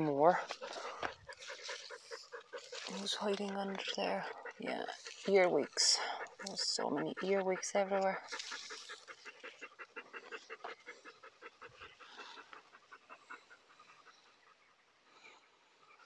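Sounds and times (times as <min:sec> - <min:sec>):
dog panting rapidly: 0:00.0 - 0:14.6.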